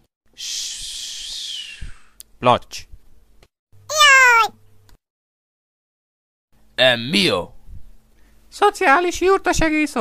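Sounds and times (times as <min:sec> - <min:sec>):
cartoon dog yelp: 0:03.9 - 0:04.5.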